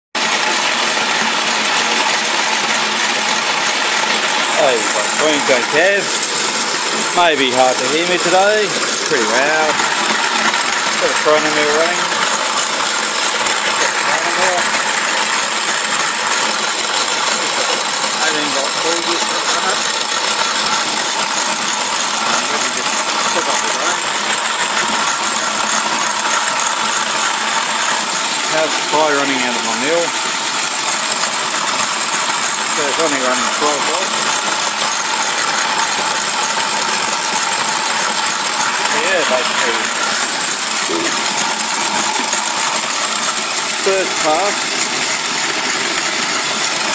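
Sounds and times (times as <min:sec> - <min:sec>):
motorised grain mill grinding: 0:00.2 - 0:46.9.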